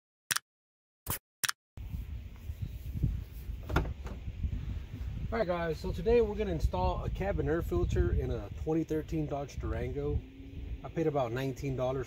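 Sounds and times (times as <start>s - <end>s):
wind noise on microphone: 1.8s - 12.0s.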